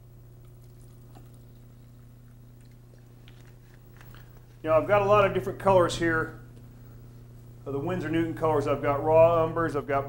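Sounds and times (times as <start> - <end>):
low electrical hum: 0.0 - 10.0
liquid trickling into cup: 0.4 - 4.2.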